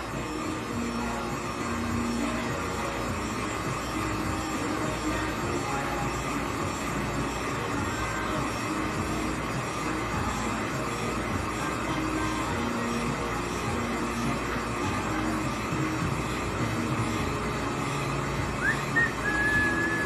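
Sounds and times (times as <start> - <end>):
heat gun blowing: 0.0 - 20.0.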